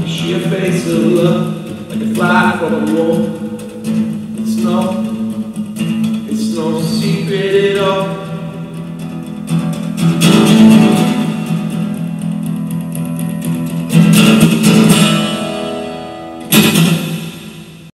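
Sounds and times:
acoustic guitar strumming chords: 0.0 - 17.9.

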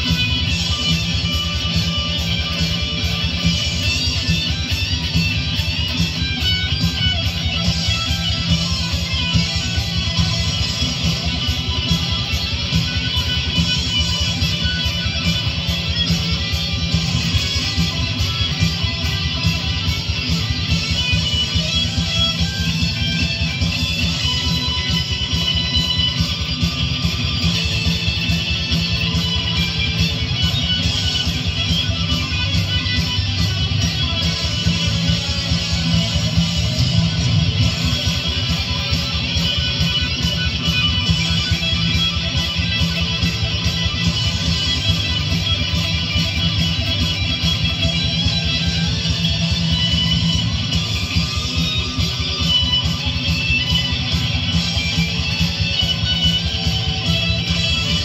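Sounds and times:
distorted electric guitar solo: 0.0 - 58.0
loud backing track: 0.0 - 58.0.

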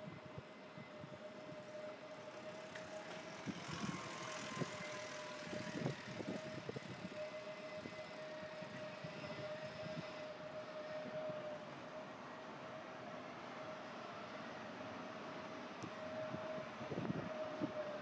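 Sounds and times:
steady motor hum: 0.8 - 11.6.

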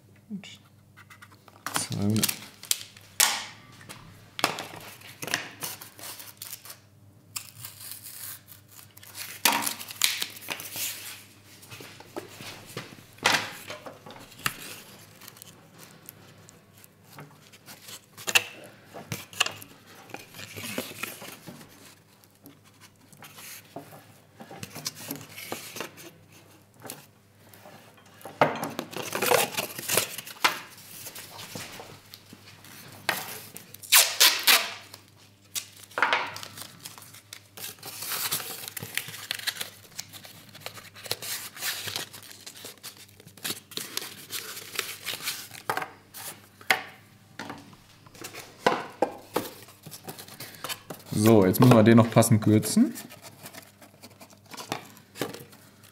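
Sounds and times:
cardboard tearing and crinkling: 1.8 - 2.9, 4.8 - 6.8, 7.4 - 11.2, 13.5 - 23.6, 28.8 - 31.7, 33.2 - 46.4, 49.3 - 55.9.

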